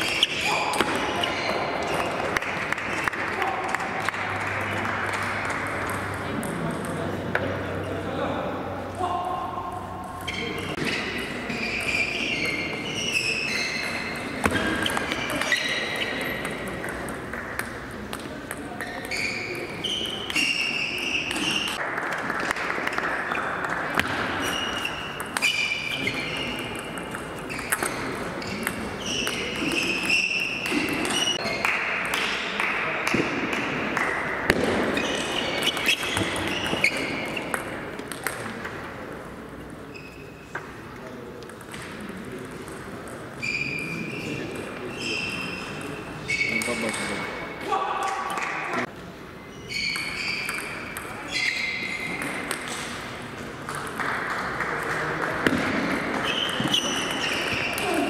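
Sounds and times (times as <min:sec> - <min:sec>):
ball clicking off bats and table: 0:00.0 - 0:07.5, 0:13.2 - 0:38.9, 0:49.8 - 0:58.0
voices in a large hall: 0:00.0 - 0:58.0
short high squeaks: 0:10.2 - 0:16.4, 0:18.8 - 0:21.8, 0:24.4 - 0:26.7, 0:43.4 - 0:46.9.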